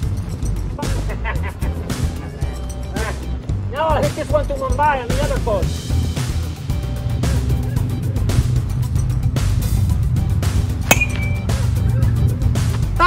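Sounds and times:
background music with steady beat: 0.0s - 13.0s
baseball bat hitting ball: 10.9s - 11.7s.

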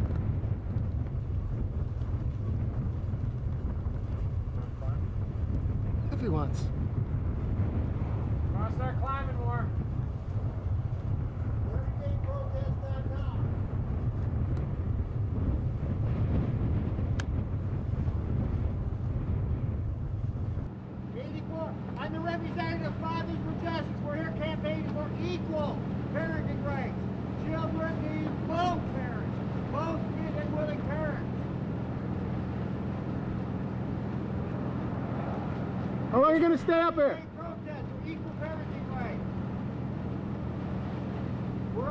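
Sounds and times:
low mechanical hum: 0.0s - 41.9s
outdoor background noise: 0.0s - 41.9s
wind rumble on microphone: 0.0s - 41.9s.

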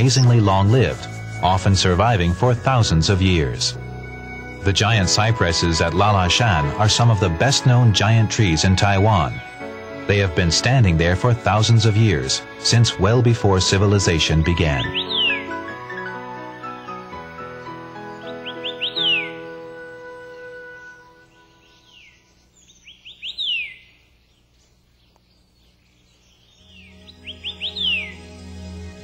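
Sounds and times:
soft background music: 0.0s - 22.5s, 26.5s - 29.0s
bird call with falling whistle: 14.8s - 16.2s, 18.2s - 19.5s, 27.2s - 28.2s.

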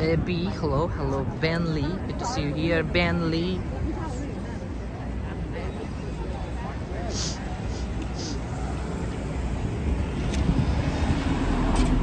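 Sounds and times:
city street traffic: 0.0s - 12.0s.

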